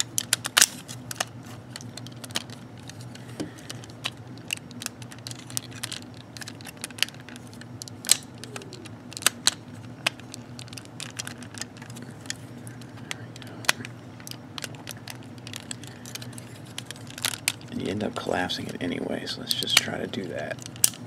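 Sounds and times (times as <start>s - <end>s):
plastic parts clicking and snapping: 0.0s - 21.0s.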